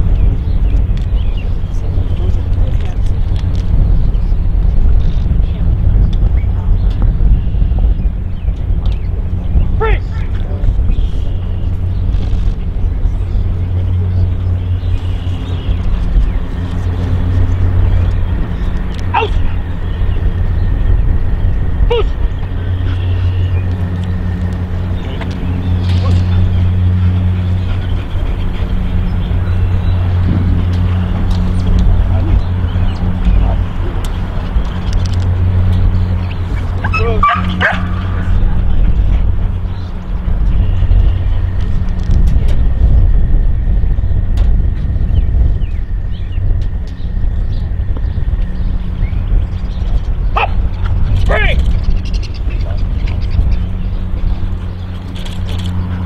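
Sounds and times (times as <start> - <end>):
low rumble: 0.0 - 56.0
dog barking: 36.9 - 38.0.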